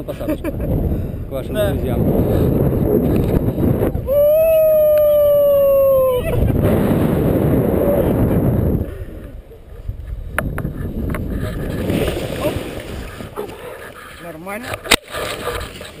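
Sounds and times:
wind rushing over microphone: 0.0 - 14.0
long held cry: 4.0 - 6.5.

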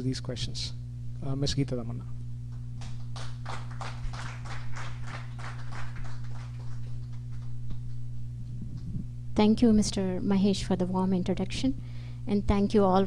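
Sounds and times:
low electrical hum: 0.0 - 13.0
audience clapping: 2.8 - 8.8.

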